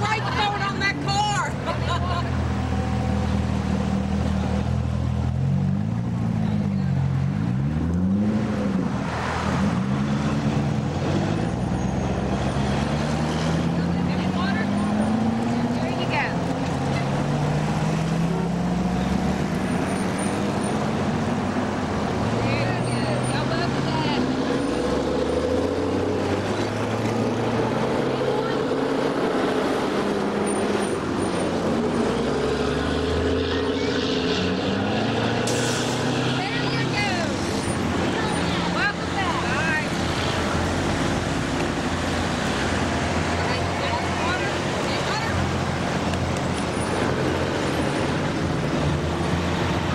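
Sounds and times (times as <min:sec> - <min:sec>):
cars driving past: 0:00.0 - 0:49.9.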